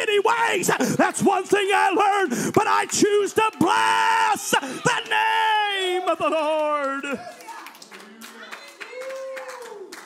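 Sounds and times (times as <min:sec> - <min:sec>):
people clapping: 0:00.7 - 0:10.0.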